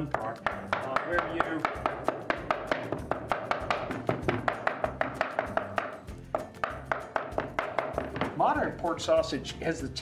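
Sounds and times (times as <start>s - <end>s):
knife chopping on wooden board: 0.0s - 8.5s.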